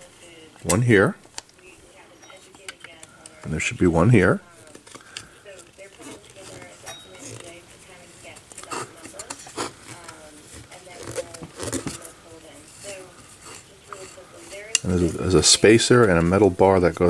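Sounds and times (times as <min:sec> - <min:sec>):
screwdriver clicking and scraping metal: 0:08.2 - 0:10.2, 0:12.7 - 0:15.6.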